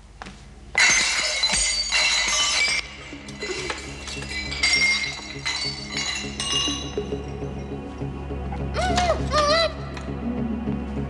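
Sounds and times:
glassy ringing clinks: 0:00.8 - 0:07.8.

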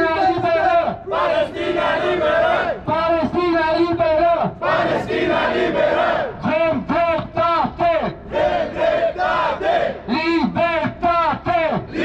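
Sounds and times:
man leading through loudspeakers: 0:00.0 - 0:01.1, 0:02.8 - 0:04.6, 0:06.4 - 0:08.3, 0:10.0 - 0:12.0
crowd chanting in unison: 0:00.2 - 0:02.8, 0:04.6 - 0:06.4, 0:08.0 - 0:10.1.

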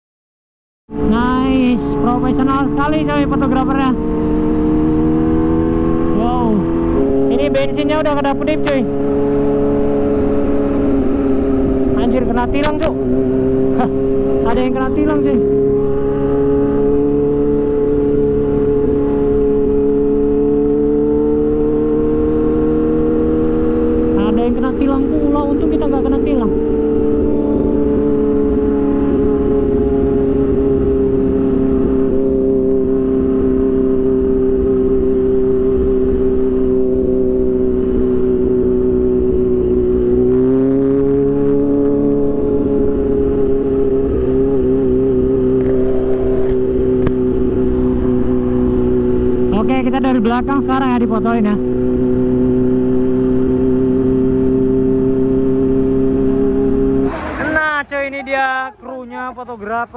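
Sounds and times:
motorcycle engine cruising: 0:00.9 - 0:59.9.

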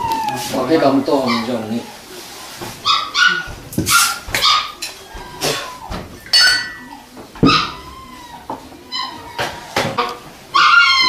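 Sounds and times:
dog yipping and barking: 0:02.8 - 0:09.5, 0:10.5 - 0:11.0.

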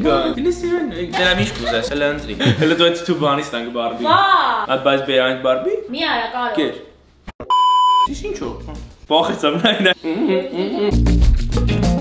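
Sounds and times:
man's voice: 0:00.0 - 0:05.3
high electronic censor bleep: 0:07.4 - 0:08.1.

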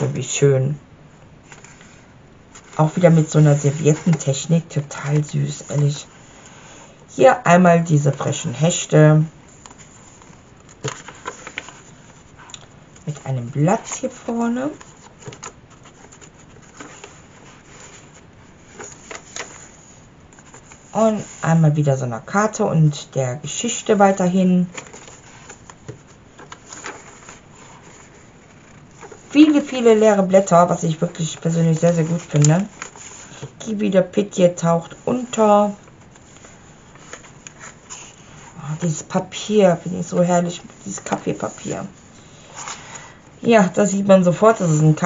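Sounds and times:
paper pages rustling: 0:01.4 - 0:06.5, 0:09.4 - 0:21.8, 0:23.6 - 0:45.0.

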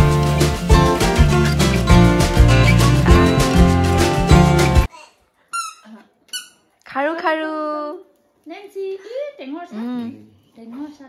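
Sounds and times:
high-pitched squeaks: 0:00.2 - 0:04.9, 0:05.5 - 0:06.7.

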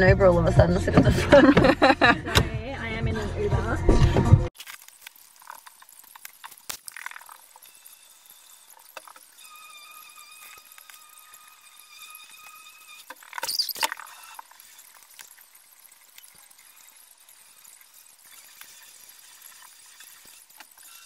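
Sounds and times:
faint high whine: 0:05.1 - 0:21.0.

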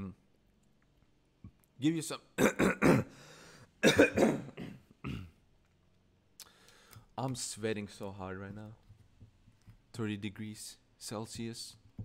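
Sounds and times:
man clearing his throat: 0:02.4 - 0:03.2, 0:03.8 - 0:05.4
man coughing: 0:02.4 - 0:03.2, 0:03.8 - 0:05.4.

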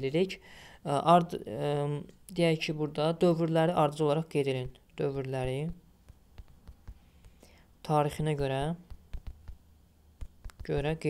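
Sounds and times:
soft breathy hiss: 0:00.3 - 0:01.0, 0:05.8 - 0:07.9
taps on phone touchscreen: 0:05.7 - 0:07.5, 0:08.4 - 0:10.9.

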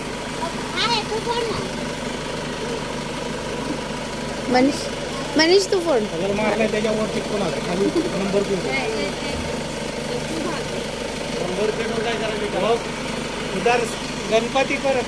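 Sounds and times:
car engine idling: 0:00.0 - 0:15.0
murmur of people talking: 0:02.6 - 0:15.0.

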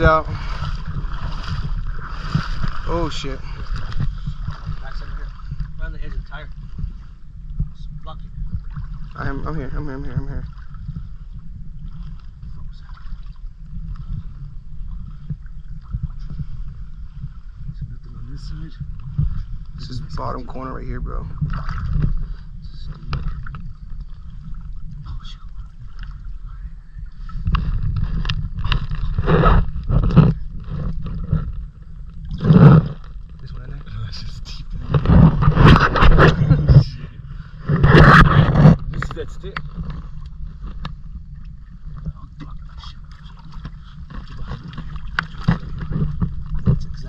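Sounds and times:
river water sloshing and splashing: 0:00.0 - 0:07.3, 0:08.4 - 0:17.6, 0:18.9 - 0:26.5, 0:27.1 - 0:34.0, 0:34.7 - 0:47.0
steady low rumble: 0:00.0 - 0:47.0.

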